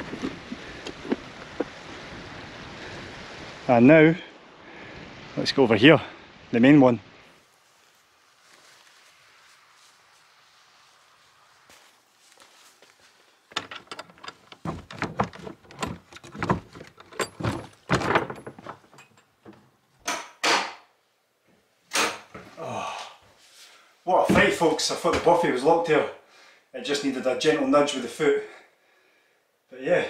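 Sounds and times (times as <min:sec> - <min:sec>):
faint outdoor hiss: 0:00.0 - 0:30.0
door handle and latch rattling: 0:13.5 - 0:19.7
wooden door clattering: 0:13.5 - 0:20.3
heavy thuds on door: 0:14.6 - 0:18.9.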